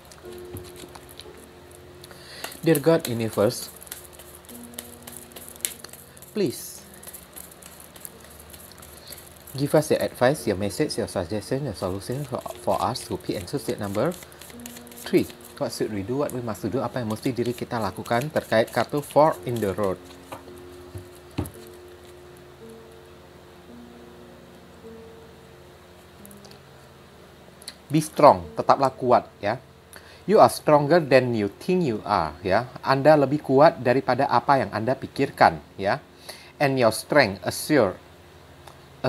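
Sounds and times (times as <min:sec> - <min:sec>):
soft background music: 0:00.0 - 0:39.0
cards clicking and rustling: 0:00.1 - 0:01.4, 0:02.0 - 0:10.2, 0:11.8 - 0:22.1
cards tapping on table: 0:02.4 - 0:06.0.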